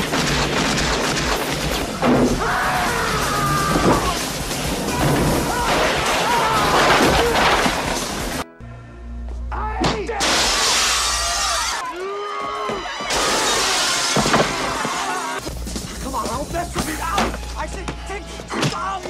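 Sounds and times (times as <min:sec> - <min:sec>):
glass window shattering: 0:00.0 - 0:08.4, 0:10.2 - 0:11.8, 0:13.1 - 0:15.2
film score music: 0:00.0 - 0:10.2
people shouting: 0:01.7 - 0:07.8, 0:11.0 - 0:15.4.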